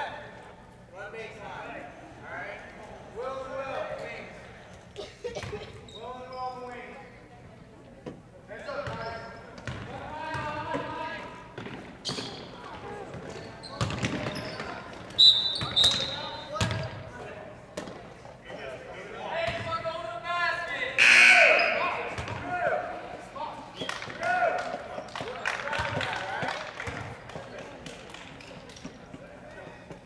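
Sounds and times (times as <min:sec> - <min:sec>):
players and spectators calling out: 0:20.9 - 0:25.3.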